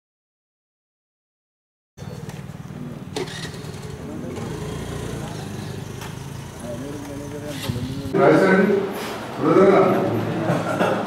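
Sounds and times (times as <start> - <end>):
vehicle engine running: 2.0 - 8.2
people's voices: 2.0 - 11.0.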